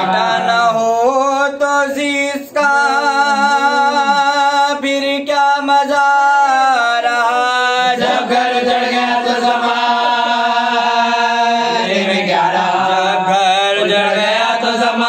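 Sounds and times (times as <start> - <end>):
group of men chanting: 0.0 - 15.0
man chanting a lament: 0.0 - 15.0.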